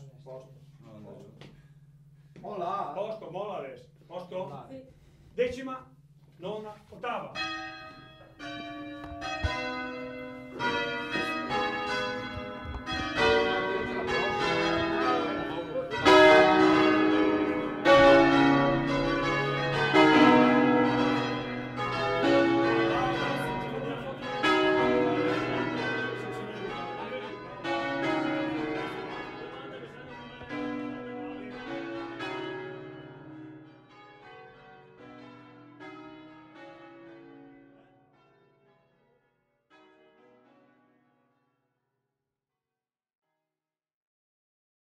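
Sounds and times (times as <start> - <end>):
church bells ringing: 6.0 - 41.2.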